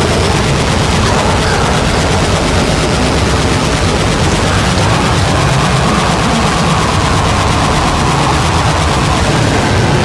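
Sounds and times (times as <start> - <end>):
droning tone: 0.0 - 10.0
harsh distorted noise music: 0.0 - 10.0
low rumble: 0.0 - 10.0.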